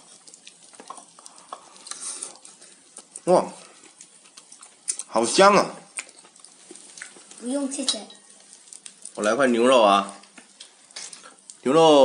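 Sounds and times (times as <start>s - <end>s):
meat sizzling on a griddle: 0.0s - 12.0s.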